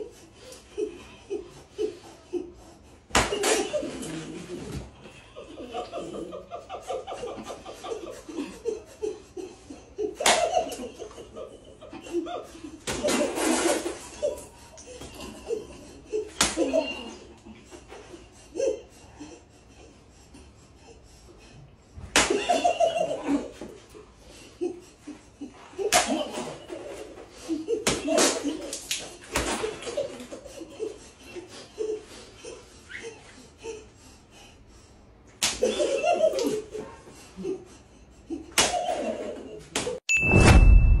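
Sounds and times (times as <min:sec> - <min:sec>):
group of men laughing: 0:00.0 - 0:40.0
sharp slap: 0:03.1 - 0:03.7, 0:10.2 - 0:10.6, 0:16.4 - 0:16.7, 0:22.2 - 0:22.5, 0:25.9 - 0:26.3, 0:35.4 - 0:35.7, 0:38.6 - 0:38.9
high ding: 0:40.1 - 0:41.0
ringing tone: 0:40.1 - 0:41.0
deep rumble: 0:40.2 - 0:41.0.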